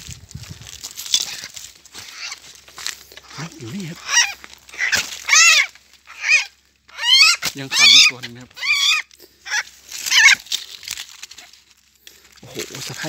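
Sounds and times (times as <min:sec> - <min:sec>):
crunching brushing noise: 0:00.0 - 0:13.0
bird calling harsh notes: 0:01.1 - 0:10.6.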